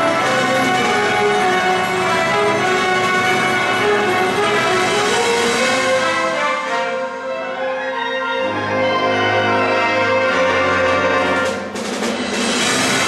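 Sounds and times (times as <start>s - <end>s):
wind band playing: 0.0s - 13.0s.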